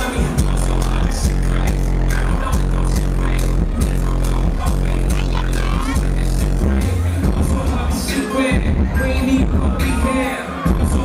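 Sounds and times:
electronic dance music: 0.0s - 11.0s
heavy bass line: 0.0s - 11.0s.

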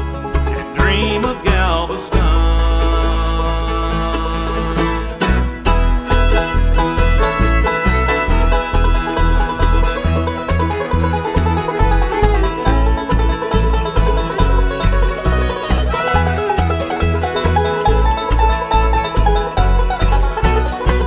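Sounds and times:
acoustic guitar: 0.0s - 21.0s
banjo: 0.0s - 21.0s
fiddle: 0.0s - 21.0s
mandolin: 0.0s - 21.0s
upright bass pulse: 0.0s - 21.0s.

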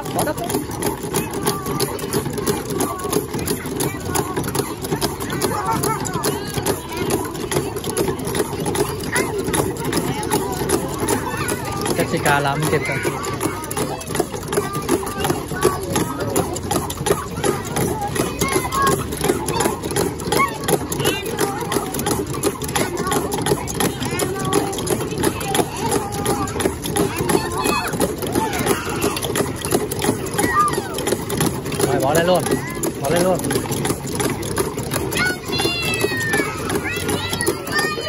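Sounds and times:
chatter of many voices: 0.0s - 38.0s.

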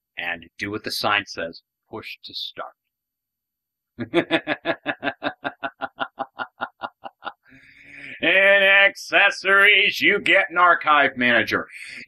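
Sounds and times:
man laughing: 4.0s - 8.6s.

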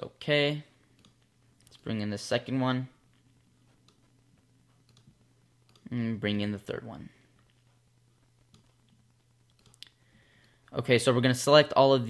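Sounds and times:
man speaking: 0.0s - 0.8s, 1.7s - 3.0s, 5.8s - 7.2s, 10.7s - 12.0s
low steady hum: 0.0s - 12.0s
computer mouse clicks: 0.9s - 1.8s, 4.8s - 5.9s, 8.4s - 10.6s.

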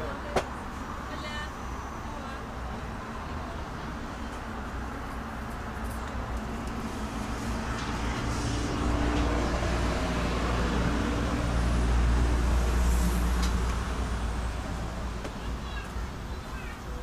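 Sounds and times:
vehicle engine rumble passing: 0.0s - 17.0s.

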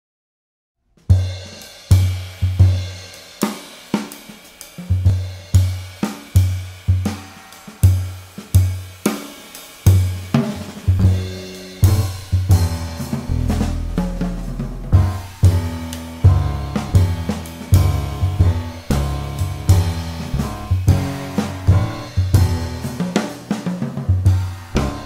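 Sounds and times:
cymbal and hi-hat wash: 1.1s - 25.0s
jazz drum kit playing: 1.1s - 25.0s
bass drum and tom hits: 9.9s - 25.0s
sustained low notes: 11.0s - 23.0s.

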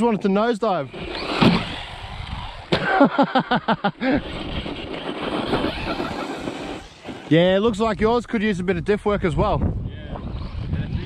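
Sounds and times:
tyres running on dry dirt: 0.7s - 8.3s
electric motor hissing: 0.9s - 2.8s, 4.0s - 7.3s
toy truck landing thump: 1.2s - 2.9s
burst of laughter: 2.7s - 4.4s, 5.7s - 6.5s.

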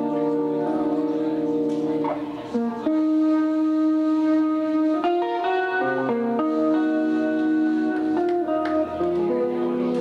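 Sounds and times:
bass guitar: 0.0s - 10.0s
electric guitar held chords: 0.0s - 10.0s.

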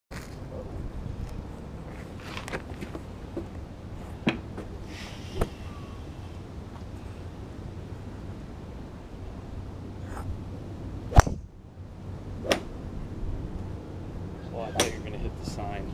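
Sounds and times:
golf club striking ball: 11.1s - 11.5s, 12.4s - 12.8s.

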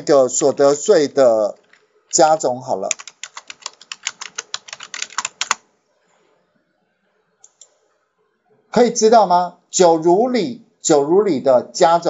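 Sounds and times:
typing on computer keyboard: 1.6s - 5.6s.

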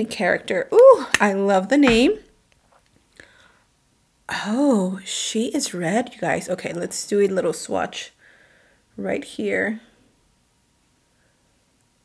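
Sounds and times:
woman speaking: 0.0s - 2.3s, 4.3s - 8.1s, 9.0s - 9.9s.

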